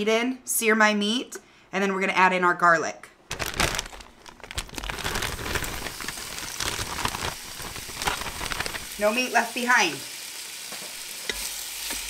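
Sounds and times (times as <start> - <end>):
plastic bag crinkling: 3.3 - 9.2
meat sizzling in oil: 5.7 - 12.0.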